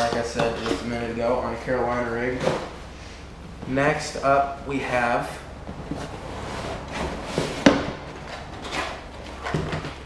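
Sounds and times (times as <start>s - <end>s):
cardboard box rustling and scraping: 5.7s - 10.0s.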